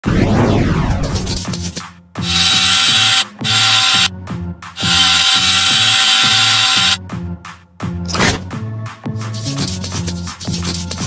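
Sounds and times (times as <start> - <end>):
background music with beat: 1.0 - 2.6, 3.3 - 5.0, 5.6 - 11.0
electric drill boring wood: 2.2 - 4.1, 4.8 - 7.0.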